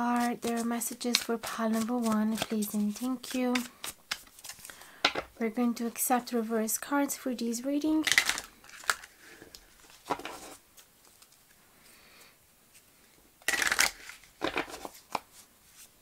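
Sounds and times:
cards being shuffled: 0.1 - 4.8, 8.0 - 11.5, 13.4 - 15.9.

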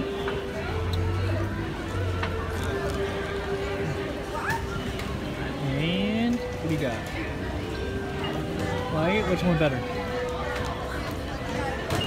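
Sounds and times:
background music held notes: 0.0 - 12.0
people talking: 0.0 - 12.0.

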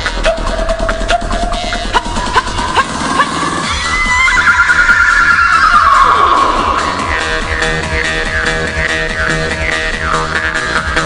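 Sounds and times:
music with low beat: 0.0 - 11.0.

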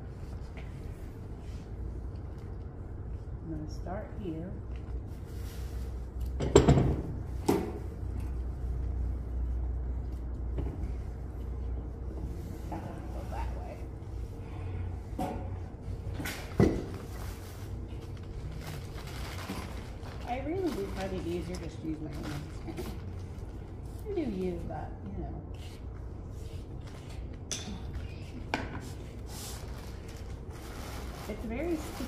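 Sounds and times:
low room hum: 0.0 - 32.0.

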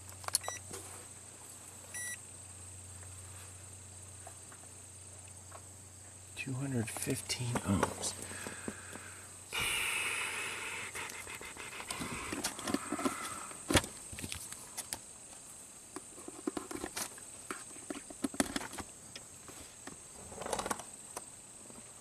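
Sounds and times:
rustle on carpet: 3.1 - 4.4
small clicks and knocks: 15.9 - 21.3.

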